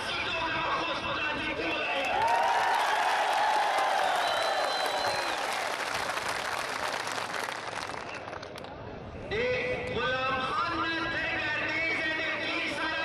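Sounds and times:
crowd applauding: 2.0 - 8.7.

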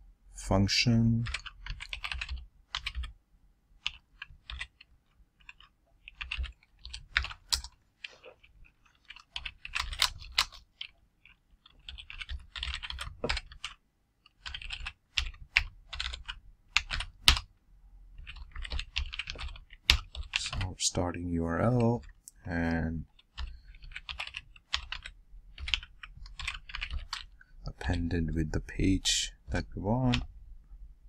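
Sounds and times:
typing on computer keyboard: 1.2 - 3.2, 3.8 - 17.5, 18.2 - 20.7, 23.1 - 27.4.

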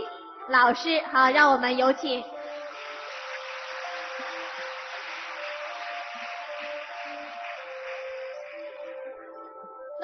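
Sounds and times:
instrumental music with sustained notes: 0.0 - 10.0
audience applause: 2.4 - 9.3.

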